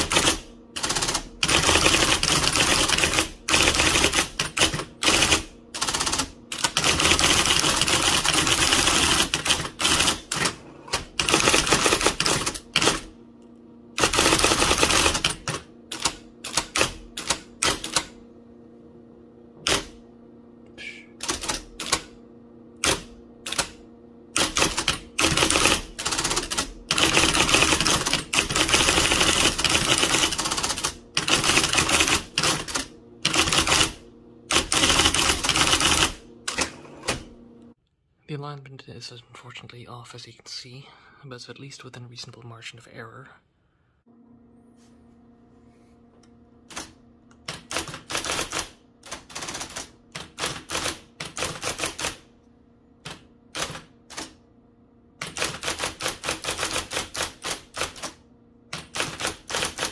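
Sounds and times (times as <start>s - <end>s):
electric typewriter keystrokes: 0.0s - 13.2s, 14.0s - 18.2s, 19.6s - 20.0s, 21.2s - 22.2s, 22.8s - 37.4s, 46.6s - 52.3s, 53.0s - 54.4s, 55.2s - 59.9s
steady motor hum: 0.0s - 37.8s.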